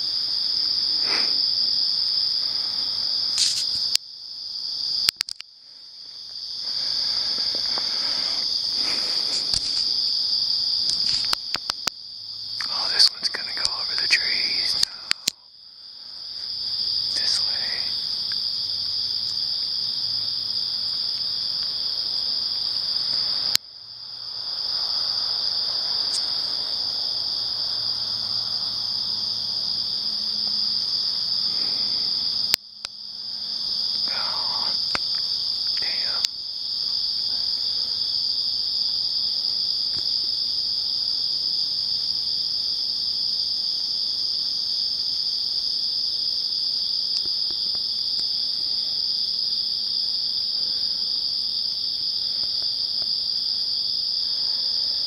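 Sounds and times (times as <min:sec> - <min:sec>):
crickets chirping: 0:00.0 - 0:55.0
click: 0:05.1 - 0:05.5.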